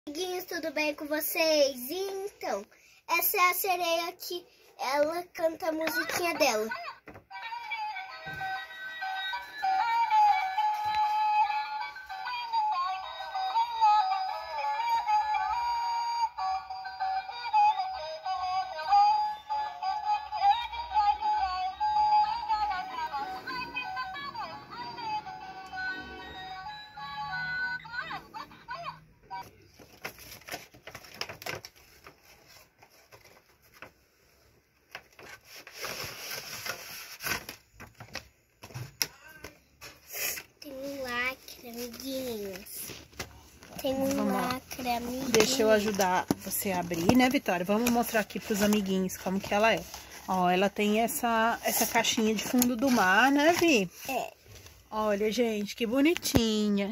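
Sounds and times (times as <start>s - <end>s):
toy doll electronic song: 7.3s - 29.5s.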